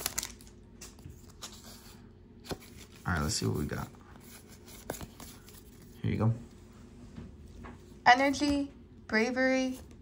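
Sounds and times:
trading cards handling: 0.0 - 6.0.

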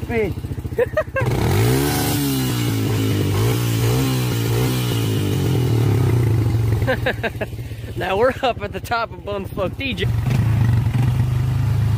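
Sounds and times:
atv engine revving: 0.0 - 11.9.

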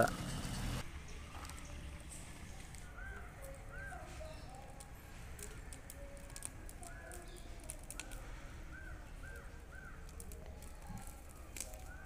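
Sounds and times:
bird calling: 2.6 - 12.0.

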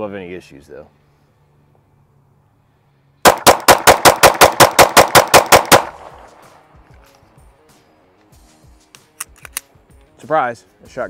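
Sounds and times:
pistol shots in rapid succession: 3.2 - 6.5.

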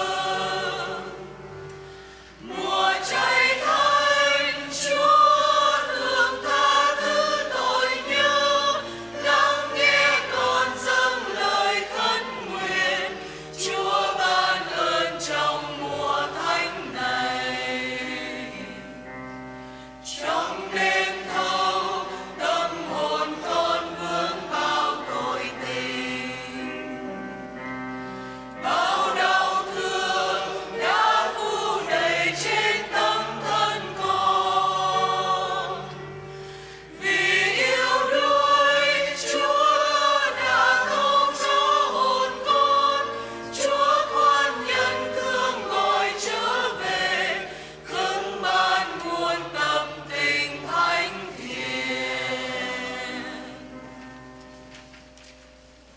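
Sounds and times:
church choir singing a hymn: 0.0 - 54.5.

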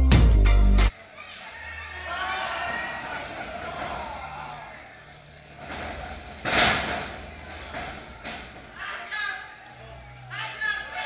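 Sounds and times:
crowd voices in a large hall: 0.8 - 11.0.

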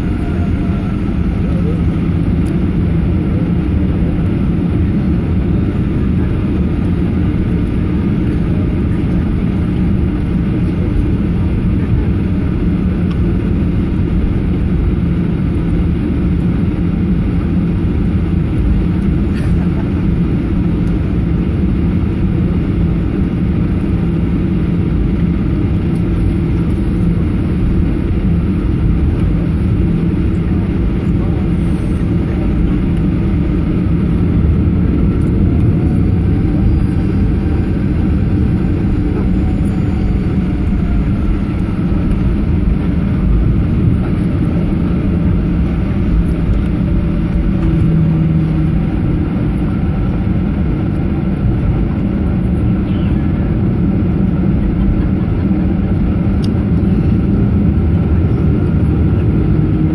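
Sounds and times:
jet engine cabin drone: 0.0 - 59.9.

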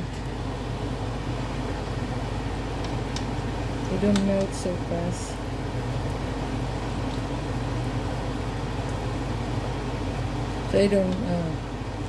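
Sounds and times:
egg rolls sizzling in oil: 0.0 - 12.0
low even hum: 0.0 - 12.0.

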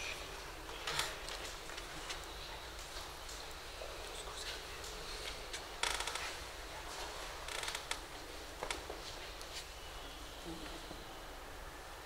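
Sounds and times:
creaking of rapid clicks: 5.8 - 6.2, 7.5 - 8.0.

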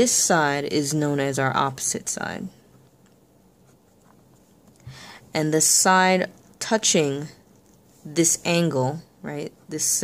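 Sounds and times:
pen scratching on paper: 3.6 - 4.6.

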